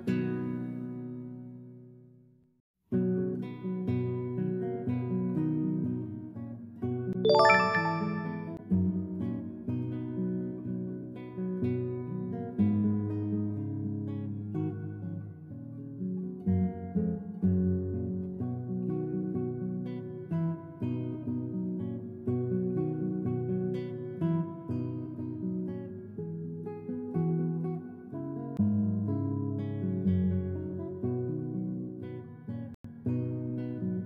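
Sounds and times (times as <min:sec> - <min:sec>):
plucked acoustic guitar: 0:09.0 - 0:34.0.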